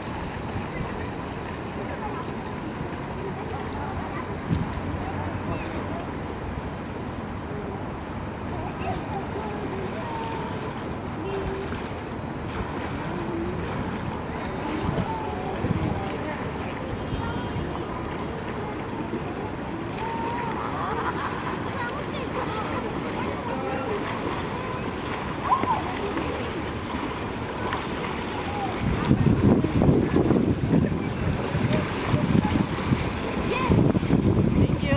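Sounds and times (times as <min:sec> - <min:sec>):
faint voices: 0:00.0 - 0:34.9
light water splashing: 0:00.0 - 0:34.9
wind noise on microphone: 0:04.3 - 0:05.7, 0:12.5 - 0:17.8, 0:27.6 - 0:34.9.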